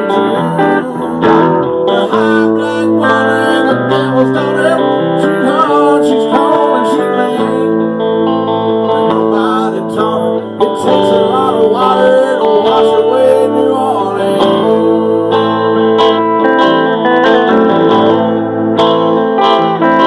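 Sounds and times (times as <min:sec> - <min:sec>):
pitch-bending melody line: 0:00.0 - 0:20.0
strummed acoustic guitar: 0:00.0 - 0:20.0.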